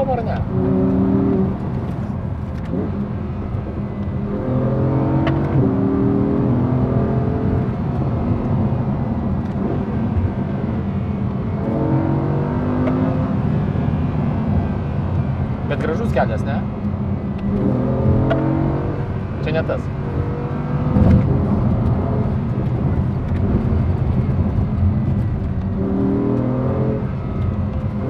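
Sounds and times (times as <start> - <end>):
car engine accelerating: 0.0 - 28.0
road noise: 0.0 - 28.0.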